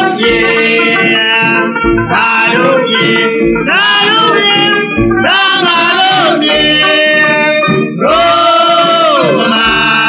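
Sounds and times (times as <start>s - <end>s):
person singing: 0.0s - 10.0s
plucked string accompaniment: 0.0s - 10.0s.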